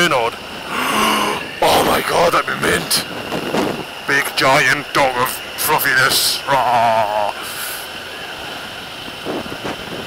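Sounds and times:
motorcycle engine and road noise: 0.0 - 10.0
wind rush over microphone: 0.6 - 4.0, 8.6 - 10.0.

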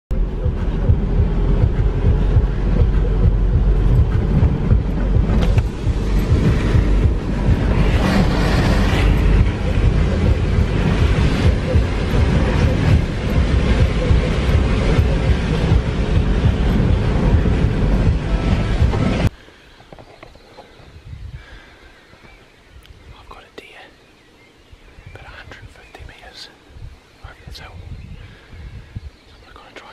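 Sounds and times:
vehicle engine and road noise: 0.1 - 20.7
quiet outdoor background: 0.1 - 29.9.

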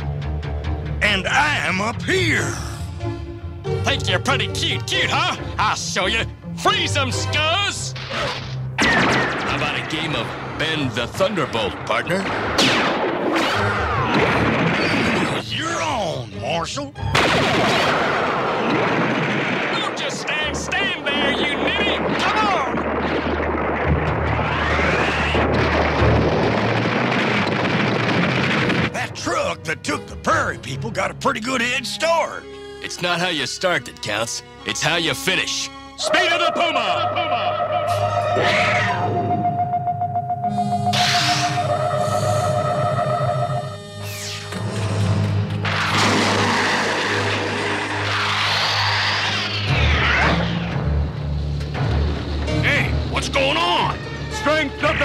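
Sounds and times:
cartoon action music: 3.7 - 23.0, 23.6 - 27.0, 28.4 - 32.4, 34.8 - 51.1, 51.7 - 55.0
cartoon rumbling sound effect: 21.5 - 28.9, 36.9 - 42.5, 45.6 - 51.0.

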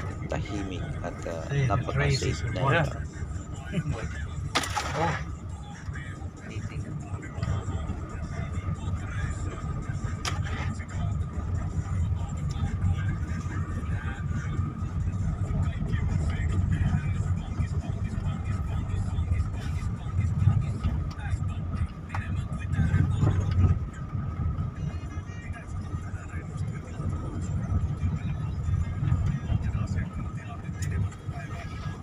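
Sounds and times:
car engine and tyres rumbling: 0.0 - 32.0.

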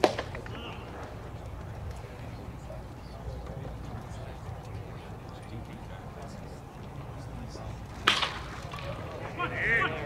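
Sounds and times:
baseball bat hitting ball: 0.0 - 0.6, 8.0 - 9.0.

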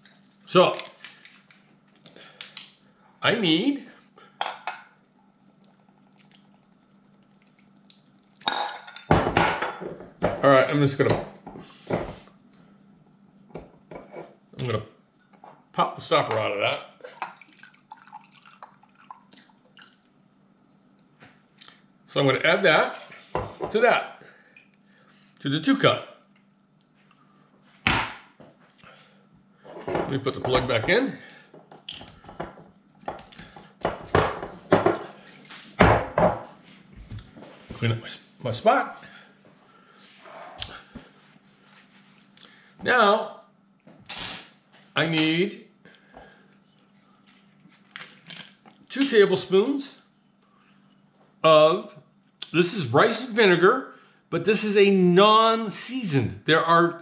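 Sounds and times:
liquid trickling into glass cup: 5.2 - 8.5, 17.2 - 20.0.

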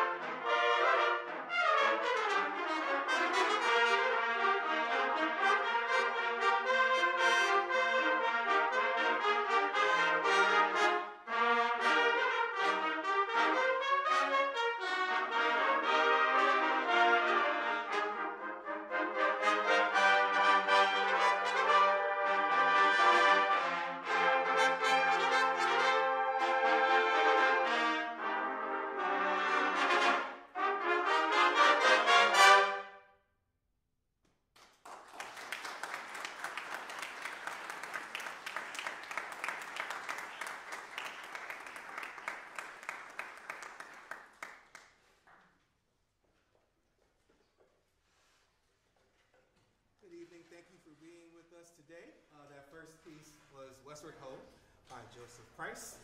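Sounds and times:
trumpet ensemble playing: 0.0 - 33.0.

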